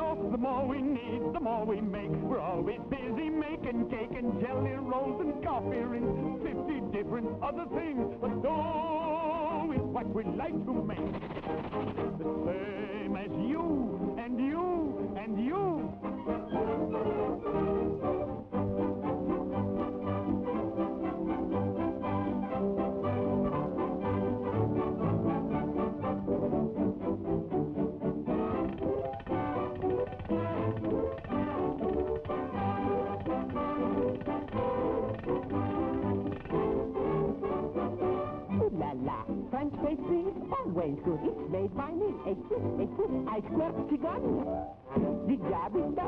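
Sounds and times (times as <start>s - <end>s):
cartoon orchestra with brass: 0.0s - 46.0s.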